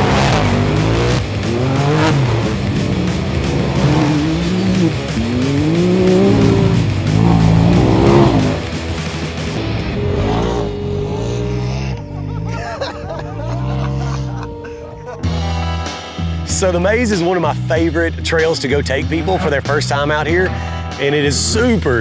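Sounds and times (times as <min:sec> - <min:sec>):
off-road engines revving: 0:00.0 - 0:14.4
background music: 0:00.0 - 0:22.0.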